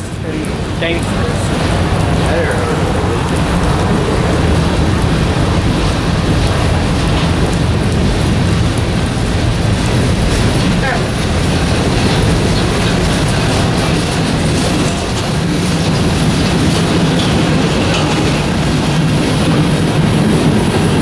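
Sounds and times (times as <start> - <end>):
freight train wheels rumbling: 0.0 - 21.0.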